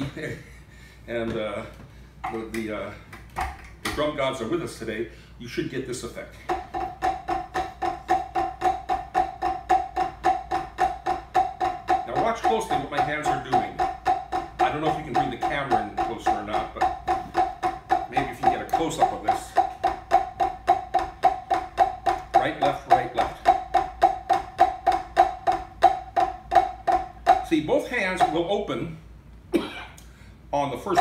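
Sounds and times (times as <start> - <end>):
drumsticks on practice pad: 6.5 - 28.5.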